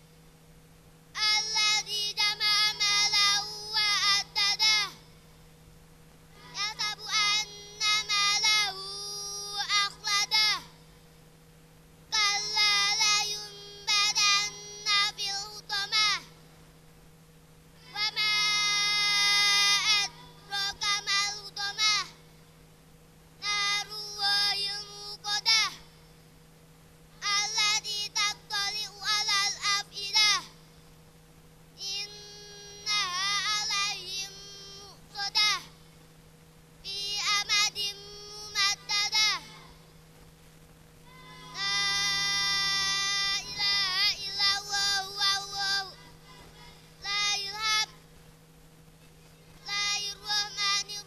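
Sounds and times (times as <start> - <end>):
low electrical hum: 0.0 - 51.0
child chanting recitation: 1.1 - 5.5, 6.3 - 11.1, 12.1 - 16.6, 17.8 - 22.5, 23.4 - 26.3, 27.1 - 30.9, 31.8 - 36.0, 36.8 - 40.0, 41.0 - 48.2, 49.3 - 51.0.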